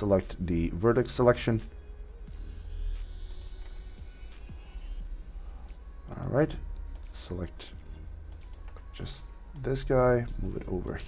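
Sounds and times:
quiet background music: 0:00.0 - 0:11.0
steady low hum: 0:00.0 - 0:11.0.

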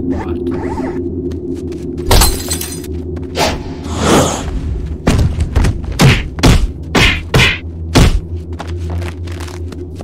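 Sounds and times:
glass shattering crash: 0:02.1 - 0:02.8.

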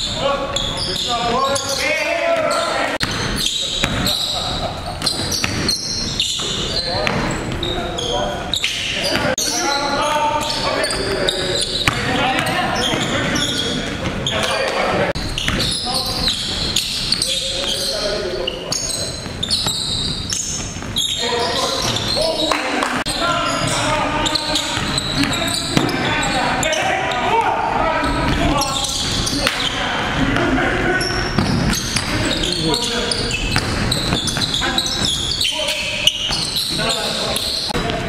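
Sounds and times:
players' indistinct calls: 0:00.0 - 0:38.0
basketball bouncing on hardwood floor: 0:33.5 - 0:34.6.

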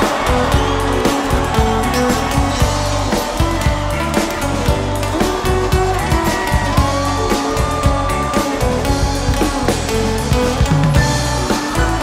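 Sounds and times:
live band music with heavy bass: 0:00.0 - 0:12.0.

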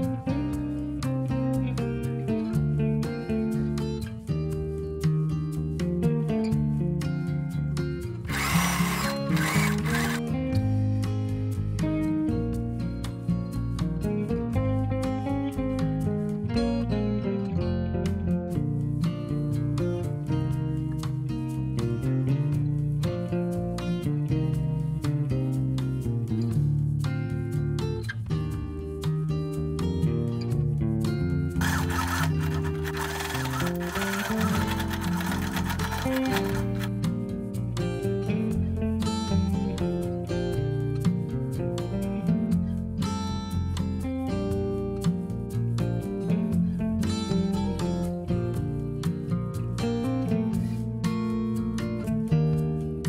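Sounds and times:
acoustic guitar music: 0:00.0 - 0:53.0
sewing machine running: 0:08.3 - 0:10.2, 0:31.6 - 0:36.9.

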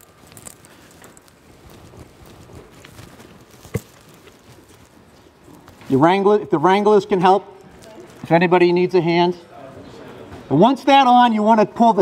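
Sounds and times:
faint rustling: 0:00.0 - 0:06.1.

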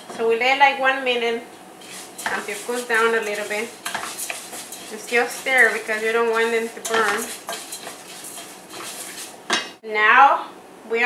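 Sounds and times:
rice scraping in a metal pot: 0:01.8 - 0:09.7.

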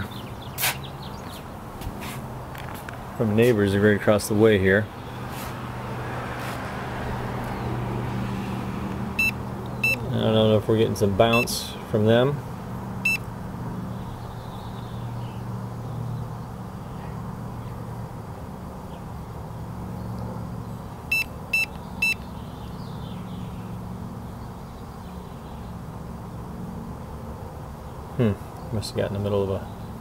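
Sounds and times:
meter beeping: 0:09.2 - 0:10.1, 0:11.3 - 0:11.6, 0:13.0 - 0:13.3, 0:21.1 - 0:22.2.

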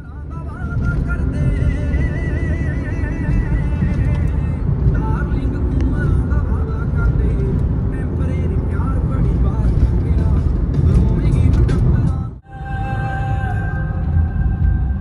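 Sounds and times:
music: 0:00.0 - 0:15.0
road and engine rumble in car: 0:00.0 - 0:15.0.

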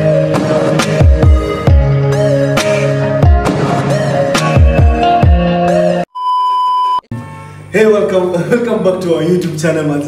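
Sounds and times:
music: 0:00.0 - 0:06.1
electronic beep: 0:06.1 - 0:07.5
man speaking: 0:07.7 - 0:10.0.

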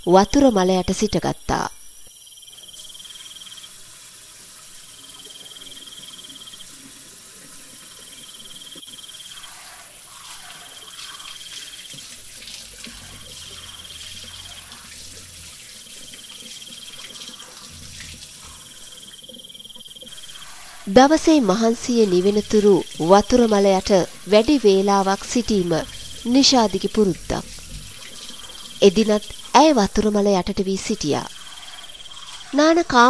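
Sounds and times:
insect trills: 0:00.0 - 0:33.0
running shower hiss: 0:00.4 - 0:33.0.

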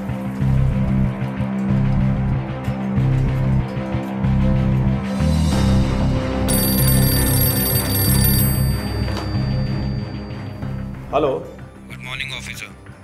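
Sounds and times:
background film music: 0:00.0 - 0:13.0
desk telephone ringing: 0:06.5 - 0:10.8.

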